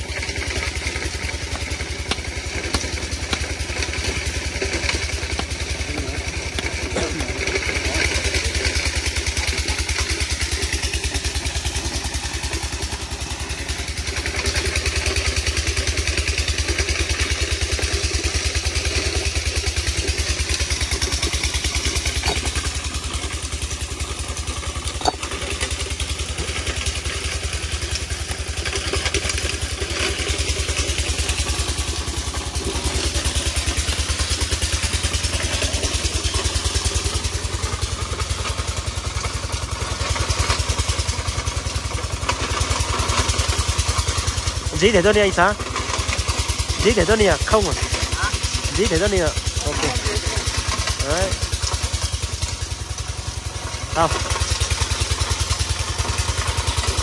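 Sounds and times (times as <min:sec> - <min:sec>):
grinding machine engine running: 0:00.0 - 0:57.0.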